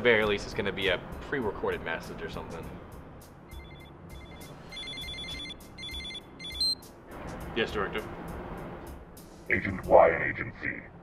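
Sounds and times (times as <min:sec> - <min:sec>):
phone ringtone beeps: 0:03.5 - 0:06.8.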